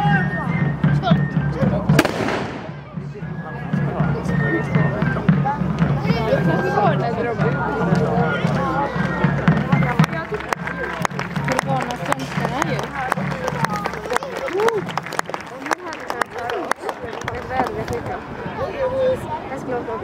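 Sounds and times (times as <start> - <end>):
crowd chatter: 0.0 - 20.0
gunshot with echo: 2.0 - 2.9.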